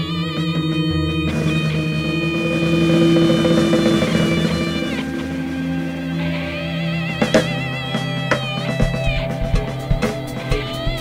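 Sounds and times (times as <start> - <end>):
ambient guitar sustained notes: 0.0 - 11.0.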